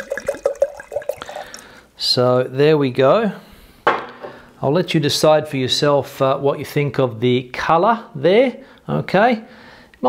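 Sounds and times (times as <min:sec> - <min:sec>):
wine glugging from bottle into glass: 0:00.0 - 0:01.8.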